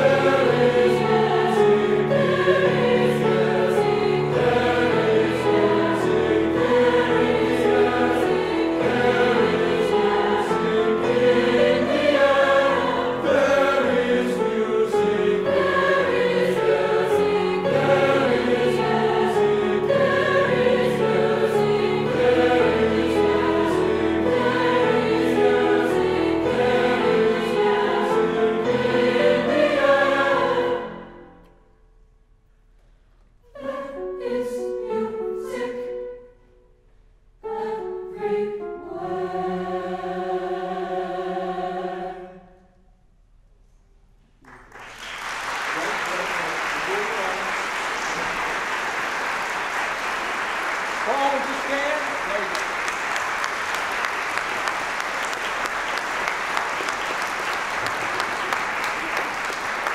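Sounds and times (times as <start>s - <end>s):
mixed choir singing: 0.0s - 31.4s, 33.5s - 36.2s, 37.4s - 42.6s
grand piano: 0.0s - 42.8s, 44.2s - 59.9s.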